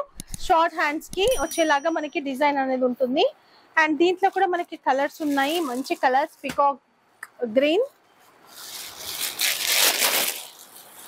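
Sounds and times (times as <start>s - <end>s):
fabric rustling: 4.1s - 6.3s, 8.1s - 11.0s.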